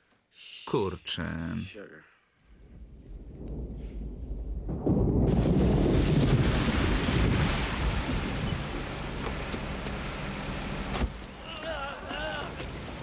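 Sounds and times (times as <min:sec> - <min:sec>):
thunder rumble: 0:02.5 - 0:11.5
heavy rain: 0:02.9 - 0:13.0.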